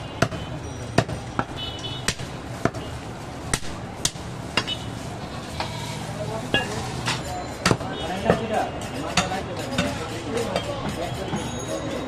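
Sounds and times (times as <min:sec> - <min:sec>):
indistinct voices talking: 0:05.2 - 0:12.0.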